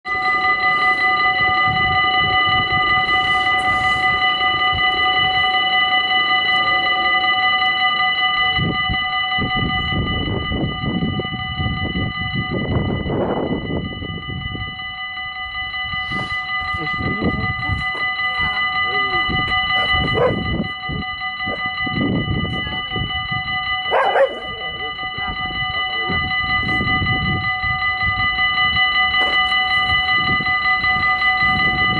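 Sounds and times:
level crossing bells ringing: 0.0 - 31.9.

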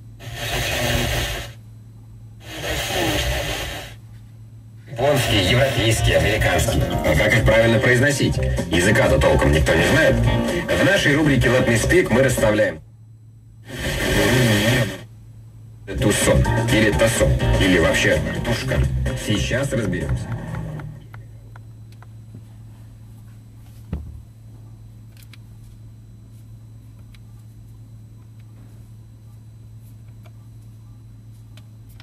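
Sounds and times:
radio static hiss: 0.0 - 1.6, 2.4 - 4.2, 4.8 - 12.8, 13.6 - 15.2, 15.8 - 21.0
low steady hum: 0.0 - 32.0.

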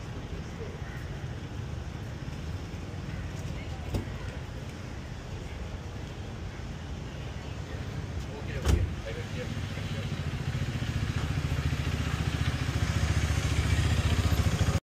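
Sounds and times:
motorcycle engine rumbling: 8.8 - 14.8.

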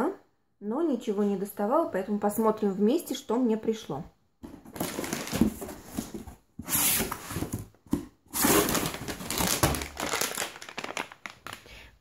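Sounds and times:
plastic packaging crinkling: 4.6 - 6.2, 8.4 - 11.9.

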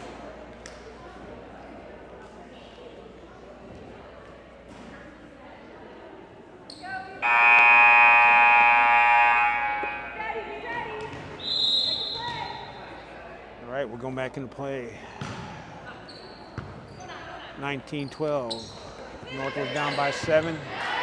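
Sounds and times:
referee's whistle blast: 7.2 - 10.2, 11.4 - 12.7
scoreboard buzzer: 7.2 - 10.2.

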